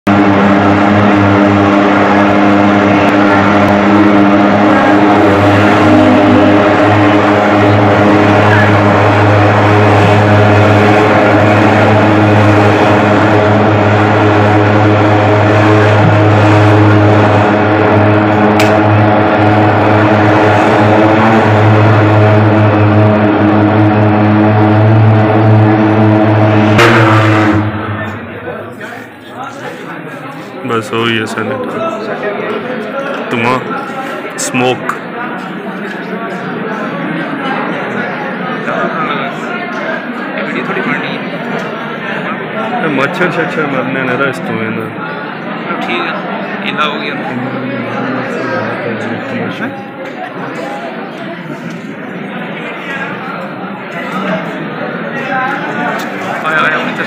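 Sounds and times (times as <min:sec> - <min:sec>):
thermal fogging machine droning: 0:00.1 - 0:30.2.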